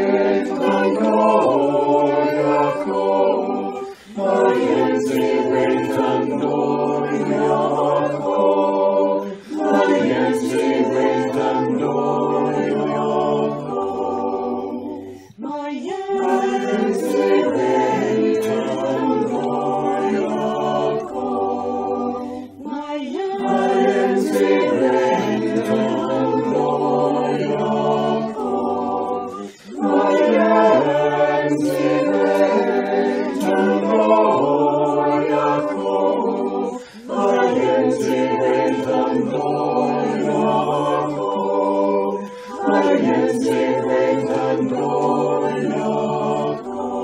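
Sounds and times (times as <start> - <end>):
choir singing a chant: 0.0 - 47.0.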